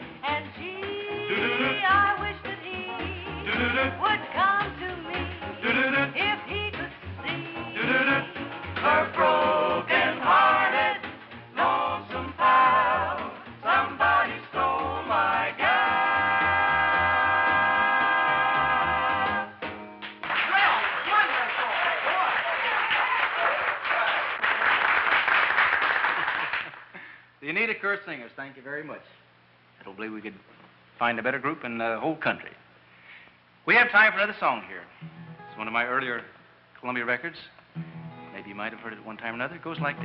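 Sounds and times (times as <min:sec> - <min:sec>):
swing band backing: 0:00.0 - 0:20.2, 0:37.7 - 0:40.0
vocal group singing harmony: 0:00.6 - 0:19.6
bass voice notes: 0:01.2 - 0:09.9, 0:38.3 - 0:40.0.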